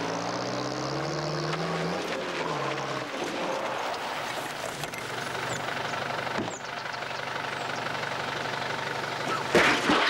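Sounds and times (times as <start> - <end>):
truck engine running: 0.0 - 10.0.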